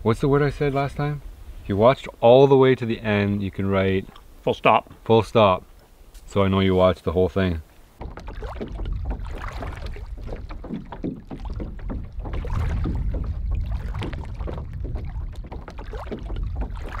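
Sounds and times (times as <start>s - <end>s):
waves lapping against canoe hull: 0.0s - 6.4s, 7.3s - 17.0s
wind rumble on microphone: 8.0s - 17.0s.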